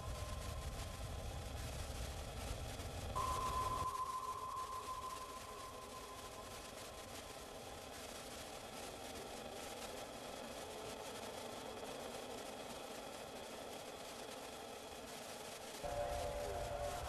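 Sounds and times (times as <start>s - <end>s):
soft hiss: 0.0s - 17.0s
droning held tones: 3.2s - 8.0s, 15.8s - 17.0s.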